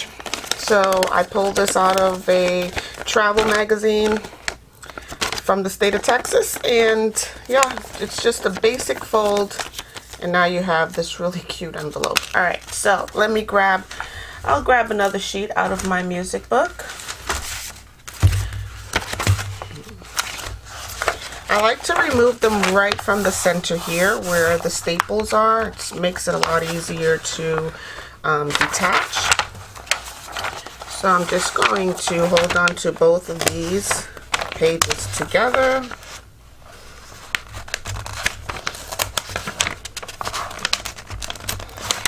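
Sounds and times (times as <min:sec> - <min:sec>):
book pages being turned: 0:00.0 - 0:10.3, 0:11.7 - 0:27.7, 0:28.4 - 0:42.0
paper rustling: 0:00.0 - 0:42.0.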